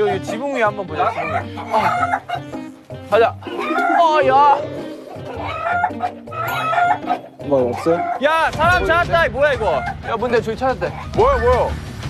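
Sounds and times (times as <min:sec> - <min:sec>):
chickens clucking: 0:00.0 - 0:02.8, 0:03.4 - 0:08.3
background music: 0:00.0 - 0:12.0.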